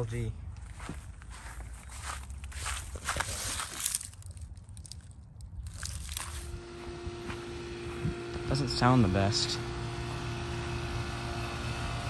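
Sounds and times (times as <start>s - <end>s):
footsteps crunching on dry grass: 0.0s - 9.3s
low steady rumble: 3.8s - 12.0s
heat pump electrical hum: 5.8s - 12.0s.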